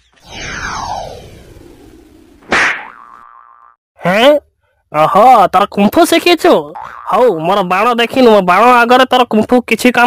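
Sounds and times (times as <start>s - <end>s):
arrow striking tree trunk: 2.4s - 3.0s
cartoon ringing boing: 6.8s - 7.2s.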